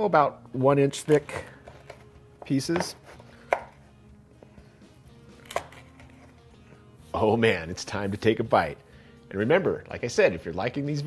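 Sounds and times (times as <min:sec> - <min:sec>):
knife striking wooden cutting board: 0:02.8 - 0:03.8.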